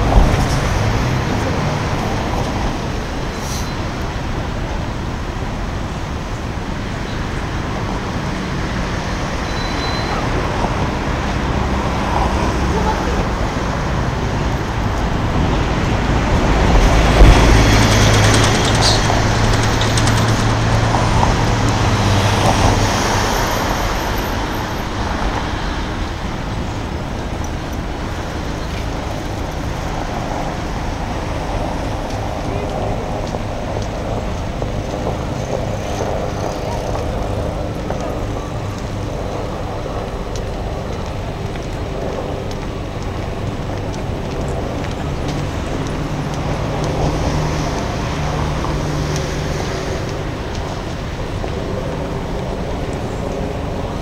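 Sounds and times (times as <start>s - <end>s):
heavy vehicle engine hum: 0.0s - 54.0s
road traffic noise: 0.0s - 54.0s.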